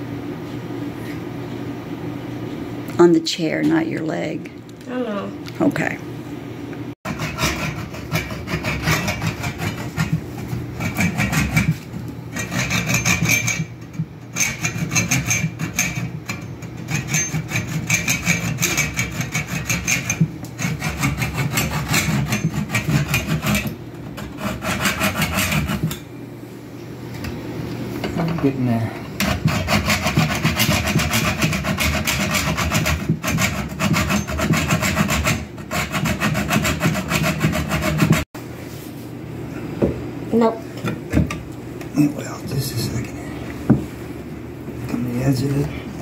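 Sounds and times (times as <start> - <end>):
saw cutting through wood: 7.1 - 10.2, 16.9 - 25.9, 29.2 - 38.3.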